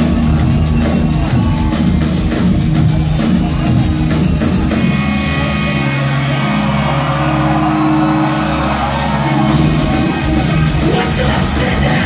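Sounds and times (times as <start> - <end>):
crowd and hall noise: 0.0 - 12.0
rock band droning chord: 4.6 - 12.0.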